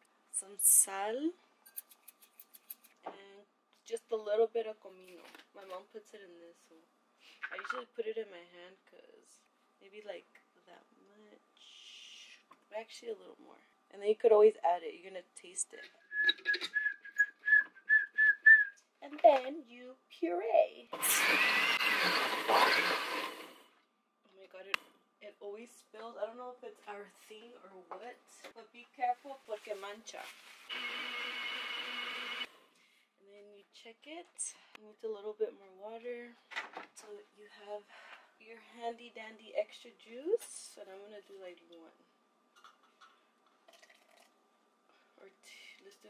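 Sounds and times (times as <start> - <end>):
blender motor: 21.0 - 23.6, 30.7 - 32.5.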